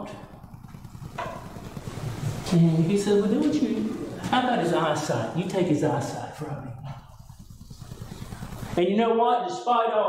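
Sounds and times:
low room rumble: 0.0s - 8.8s.

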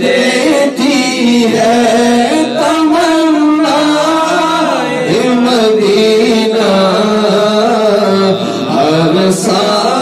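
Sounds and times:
man singing unaccompanied: 0.0s - 10.0s.

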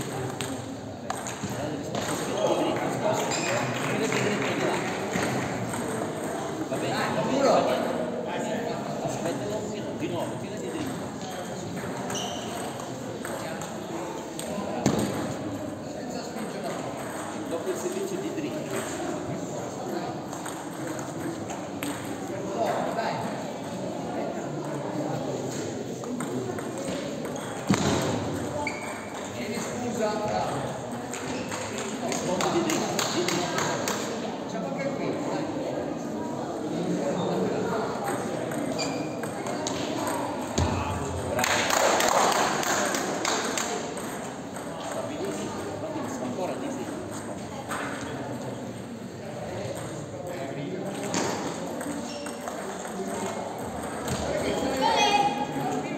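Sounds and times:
table tennis ball hits: 0.0s - 2.4s, 3.2s - 6.9s, 14.4s - 15.4s, 16.4s - 17.5s, 26.1s - 29.7s, 38.0s - 42.0s, 42.9s - 45.4s, 51.0s - 54.4s
sports hall chatter: 0.0s - 55.9s.

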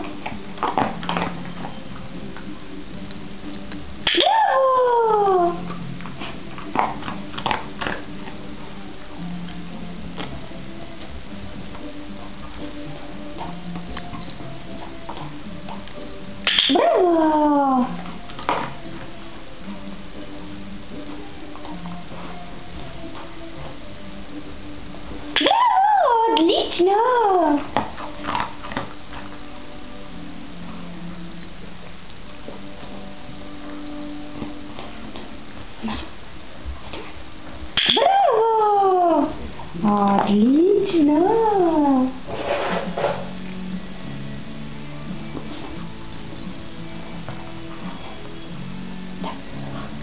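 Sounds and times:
dog whining: 4.1s - 6.8s, 16.5s - 18.3s, 25.4s - 28.4s, 37.8s - 39.9s
person praising high-pitched: 25.4s - 27.7s.

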